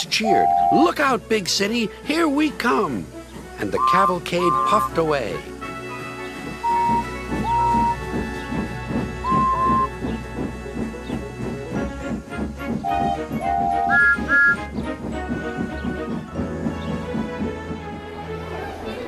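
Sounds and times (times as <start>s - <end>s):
steam locomotive chuffing: 0.0s - 18.1s
background music: 0.0s - 19.0s
short train whistle toots: 3.8s - 5.0s, 6.6s - 8.1s, 9.2s - 9.9s, 12.9s - 14.6s.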